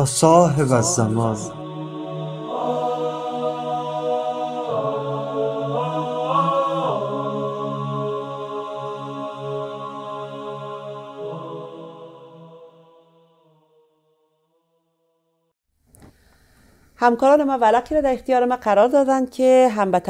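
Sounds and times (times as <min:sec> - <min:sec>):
wordless vocal chords music: 0:00.0 - 0:13.6.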